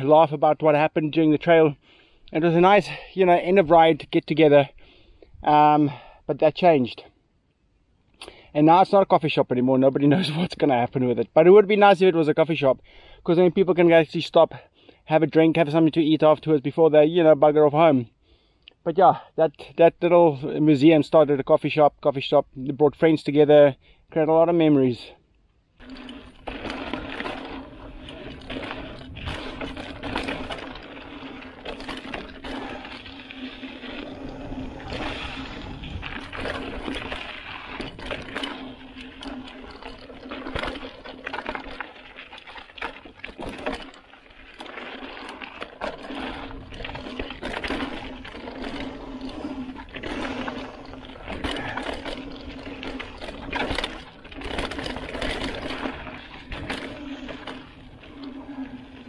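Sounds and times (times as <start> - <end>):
bike knocks and rattles: 25.8 - 59.0
rear hub buzzing: 25.8 - 59.0
tyres crunching over dirt: 25.8 - 59.0
wind rumble on microphone: 34.2 - 37.2.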